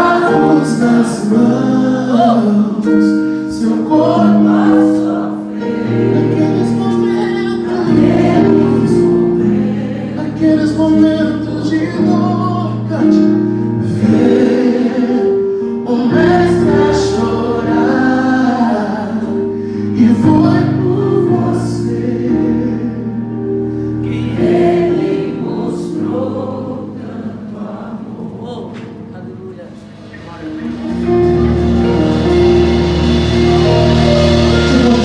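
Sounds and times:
vocal group singing in harmony: 0.0s - 29.1s, 32.4s - 35.0s
keyboard accompaniment: 0.0s - 35.0s.

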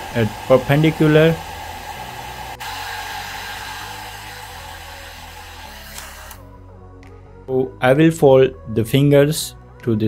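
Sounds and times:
hair dryer blowing: 0.0s - 6.5s
soft background music: 0.0s - 10.0s.

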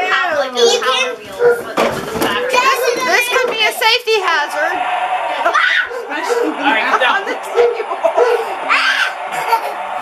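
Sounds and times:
family laughing: 5.3s - 10.0s
high-pitched cry: 8.4s - 9.6s.

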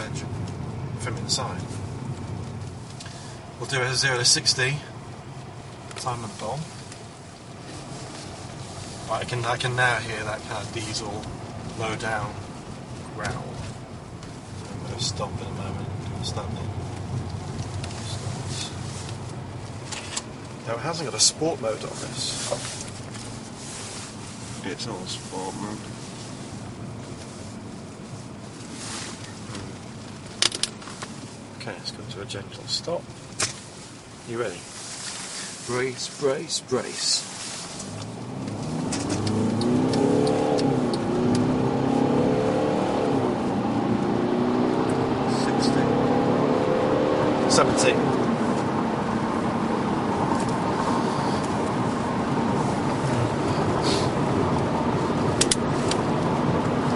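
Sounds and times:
diesel engine hum: 0.0s - 56.9s
road and wind noise: 0.0s - 56.9s
brief hiss: 53.8s - 54.2s.

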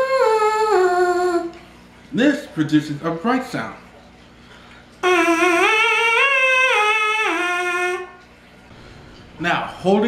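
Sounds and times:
brass mouthpiece buzzing: 5.0s - 8.3s.

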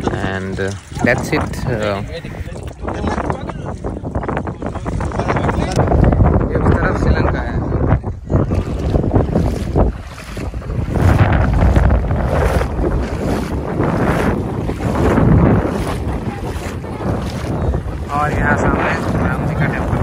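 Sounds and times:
shallow sea water washing: 0.0s - 2.8s, 8.4s - 20.0s
wind gusting across microphone: 0.0s - 20.0s
low rumble: 5.8s - 20.0s.

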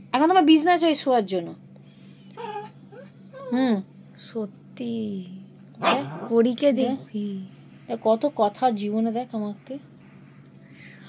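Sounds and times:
dog whiny grumbles: 2.3s - 3.7s, 5.8s - 7.0s.

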